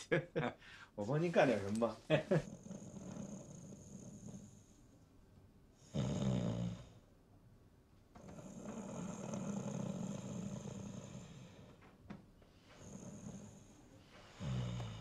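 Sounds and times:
person snoring: 2.4 - 4.7, 5.8 - 7.0, 8.3 - 11.8, 12.6 - 15.0.

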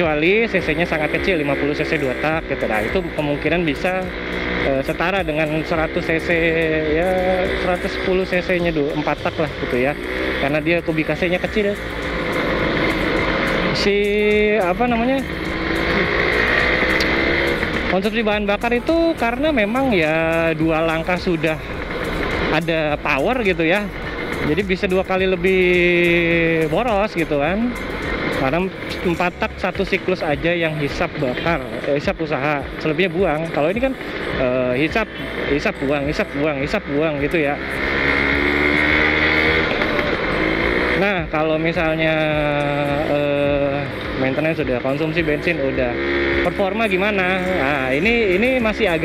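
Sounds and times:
motorcycle engine running: 0.0 - 49.0
road and wind noise: 0.0 - 49.0.

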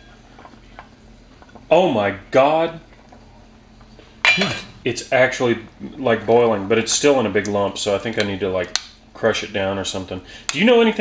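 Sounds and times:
metal spoon clinking on saucepan: 4.3 - 4.7.

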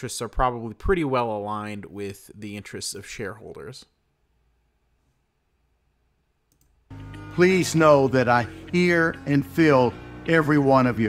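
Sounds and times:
soft background music: 6.9 - 11.0.

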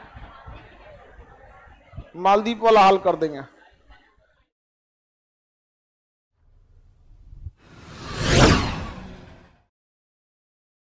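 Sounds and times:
whoosh with low rumble: 6.6 - 9.6.

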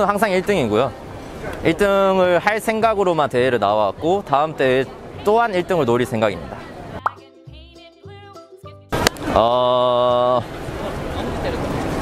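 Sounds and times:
rising pop sound effect: 7.0 - 7.3.

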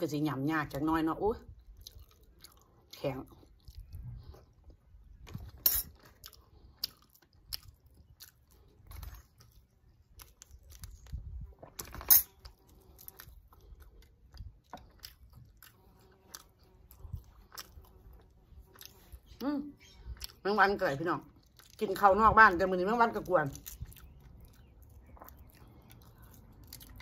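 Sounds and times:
person chewing: 1.6 - 20.4, 21.3 - 21.9, 23.4 - 27.0.

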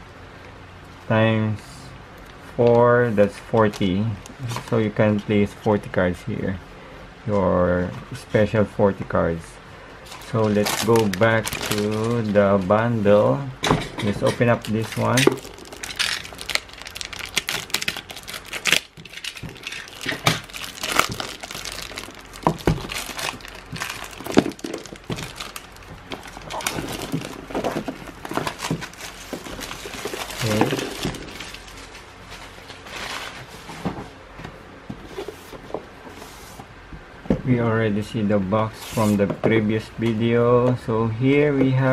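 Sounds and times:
plastic wrap tearing and crinkling: 10.2 - 12.4, 14.2 - 33.4.

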